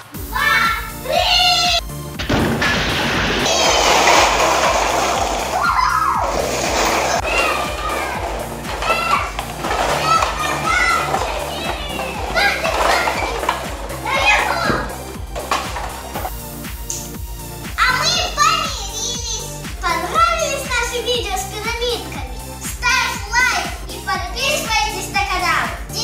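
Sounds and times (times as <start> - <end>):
background music with steady beat: 0.0 - 26.0
children shrieking and laughing: 5.4 - 15.1
cups clattering onto wooden floor: 6.3 - 16.4.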